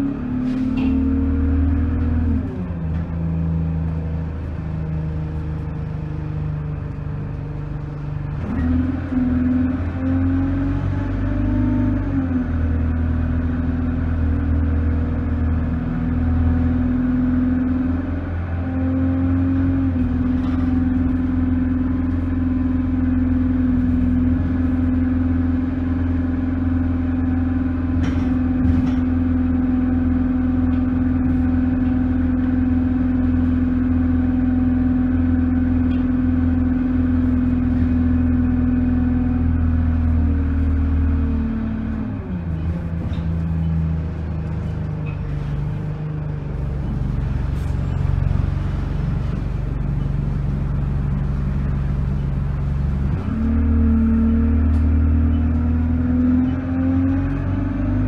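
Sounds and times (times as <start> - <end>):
bus engine drone: 0.0 - 58.0.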